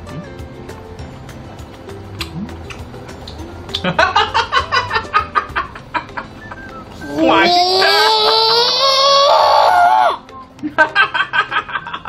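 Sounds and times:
child giggling: 4.1s - 9.4s.

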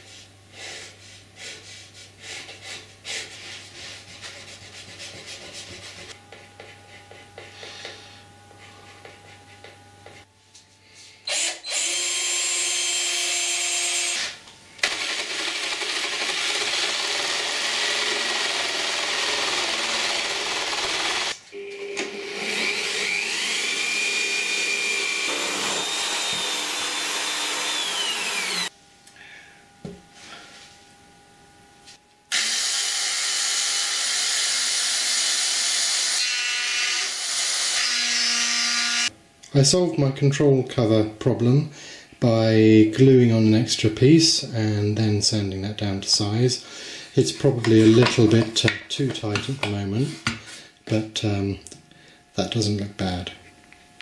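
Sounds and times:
pencil scratching on wood: 3.1s - 7.8s
electric jigsaw cutting wood: 11.3s - 21.4s, 22.0s - 28.7s, 32.3s - 39.1s.

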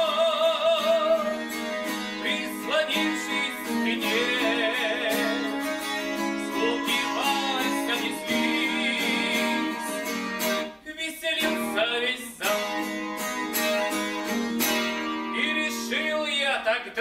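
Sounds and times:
man singing: 0.0s - 13.9s, 14.7s - 17.0s
acoustic guitar strummed: 0.0s - 16.9s.

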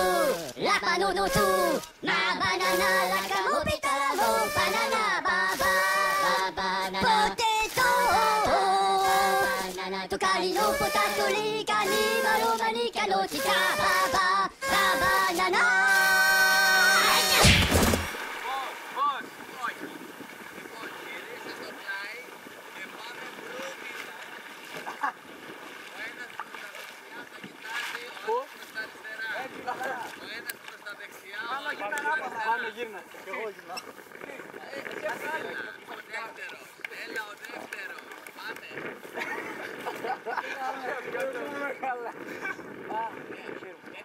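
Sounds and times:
people calling out: 0.0s - 19.8s
people chattering and calling: 0.0s - 43.3s
sea: 0.0s - 44.0s
wind hiss on microphone: 0.0s - 44.0s.

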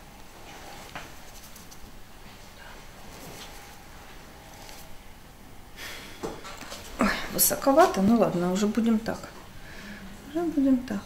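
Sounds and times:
faint handling sounds: 0.2s - 5.0s.

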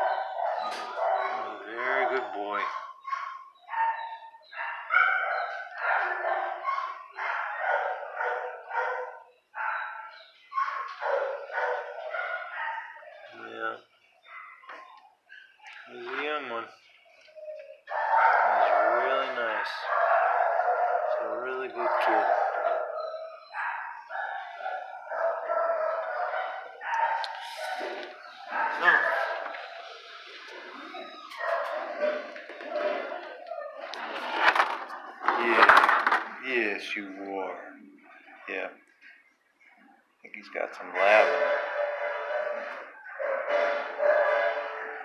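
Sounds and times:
dog howling and whining: 0.0s - 13.6s, 17.0s - 34.2s, 40.8s - 45.0s.

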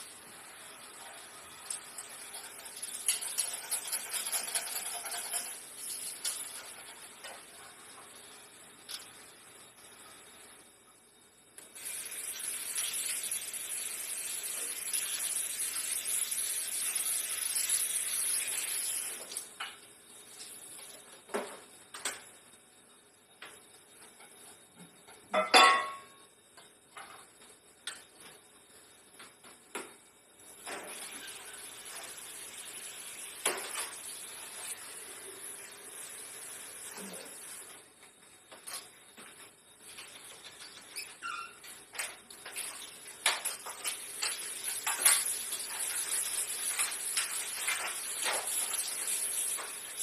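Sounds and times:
steady hiss: 0.0s - 10.8s, 11.6s - 21.2s, 30.4s - 38.5s, 42.4s - 50.0s.

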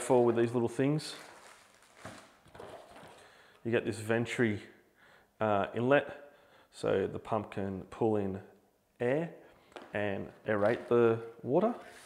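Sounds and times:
packaging rustling: 1.0s - 3.2s.

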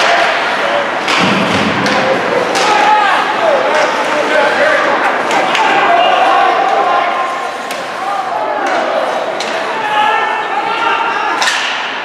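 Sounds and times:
hockey stick hitting puck: 0.0s - 4.0s, 8.6s - 9.8s, 11.4s - 12.0s
spectators' voices: 0.0s - 12.0s.

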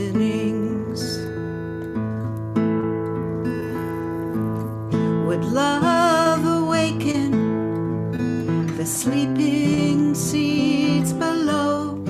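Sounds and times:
woman singing: 0.0s - 1.6s, 5.0s - 12.0s
acoustic guitars strummed: 0.0s - 12.0s.

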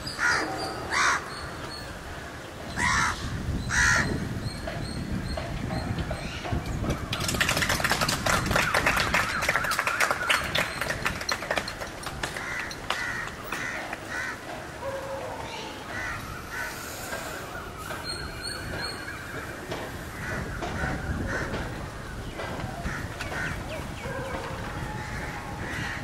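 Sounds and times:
crows cawing: 0.2s - 1.3s, 2.8s - 4.2s, 12.4s - 17.2s, 20.0s - 21.9s, 22.8s - 26.0s.

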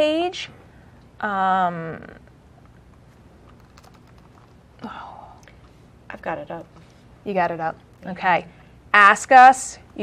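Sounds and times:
keyboard typing: 2.5s - 8.2s.

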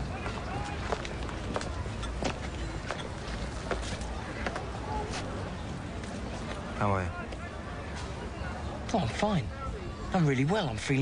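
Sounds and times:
footsteps on paved path: 0.0s - 6.7s
distant traffic rumble: 0.0s - 11.0s.

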